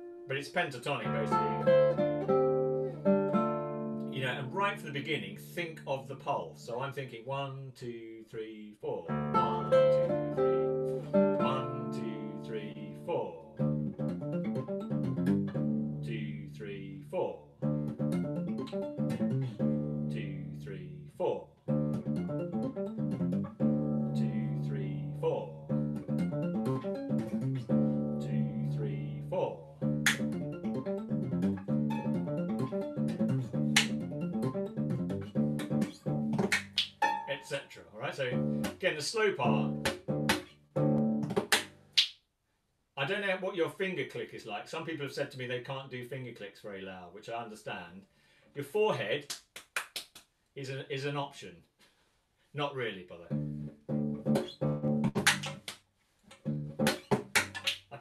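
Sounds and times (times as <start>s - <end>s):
classical guitar playing: 0.0s - 0.3s, 0.9s - 5.4s, 9.1s - 16.6s, 17.6s - 20.7s, 21.6s - 37.4s, 38.2s - 38.8s, 39.4s - 42.0s, 53.3s - 55.7s, 56.3s - 57.7s
sharp percussive snaps: 30.0s - 30.4s, 33.7s - 34.5s, 35.6s - 37.2s, 39.8s - 40.5s, 41.2s - 42.2s, 49.2s - 50.3s, 54.4s - 57.9s.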